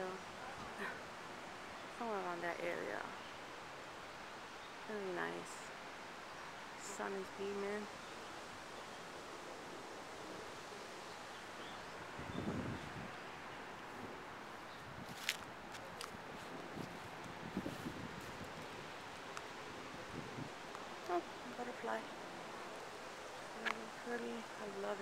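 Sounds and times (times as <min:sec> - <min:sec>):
breeze through trees: 0:00.0 - 0:25.0.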